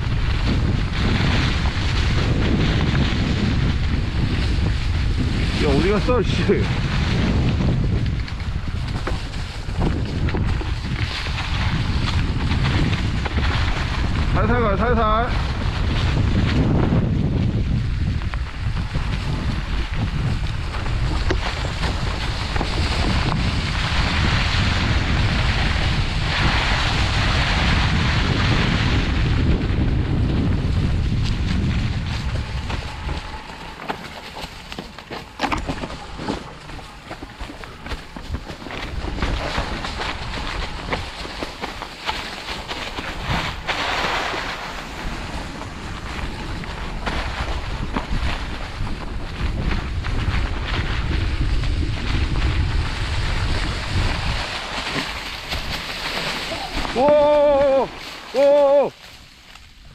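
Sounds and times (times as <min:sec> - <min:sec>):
bike rattling: 0:00.0 - 0:59.9
tyres rolling over leaves and dirt: 0:00.0 - 0:59.9
wind rushing over microphone: 0:00.0 - 0:59.9.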